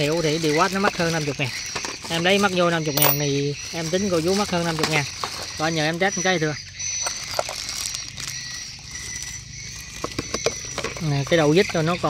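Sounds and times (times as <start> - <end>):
metal sockets clinking in plastic case: 2.9 - 3.3.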